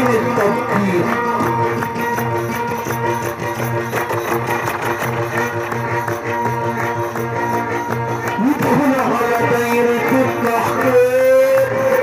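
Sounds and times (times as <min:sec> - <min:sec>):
hand drum beat: 0:00.0 - 0:12.0
sustained melodic notes: 0:00.0 - 0:12.0.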